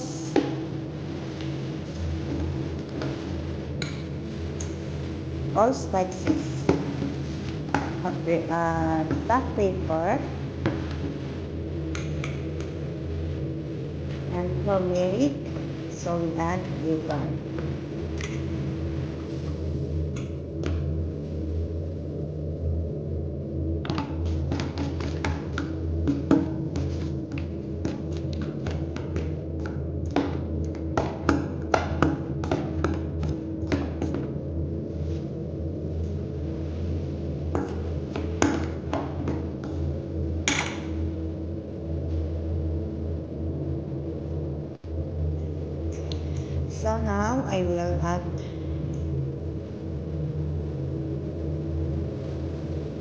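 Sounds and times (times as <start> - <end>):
low steady hum: 0.0 - 53.0.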